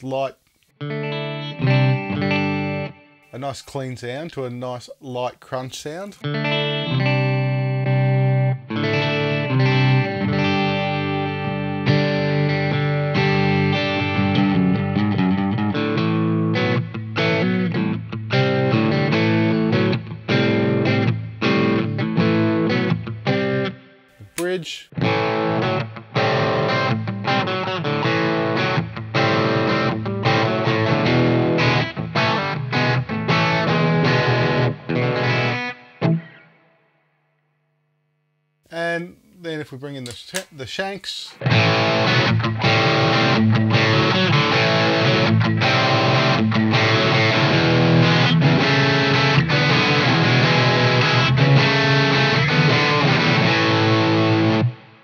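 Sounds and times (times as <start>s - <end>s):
click: 0.4s - 0.7s
electric guitar playing: 0.8s - 3.3s, 6.2s - 24.0s, 24.9s - 36.8s, 41.4s - 55.0s.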